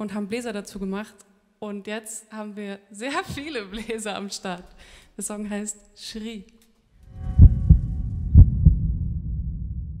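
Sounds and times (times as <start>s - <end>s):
low rumble: 7.0s - 10.0s
deep thumps: 7.2s - 10.0s.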